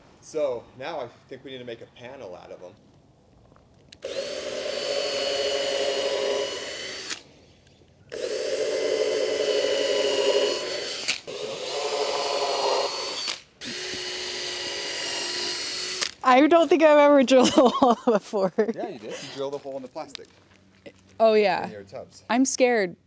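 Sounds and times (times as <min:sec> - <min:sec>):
cordless drill into wood: 0:04.0 - 0:07.3, 0:08.1 - 0:16.4, 0:19.2 - 0:19.5.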